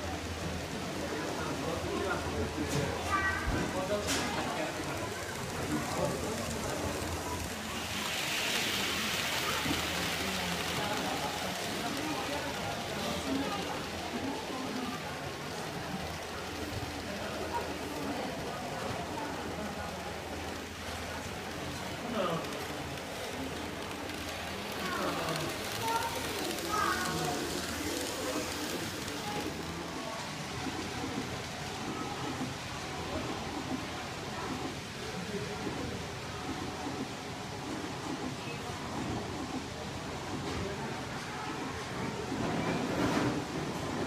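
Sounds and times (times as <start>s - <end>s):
indistinct chatter: 0.0s - 44.0s
model trains rolling: 0.0s - 44.0s.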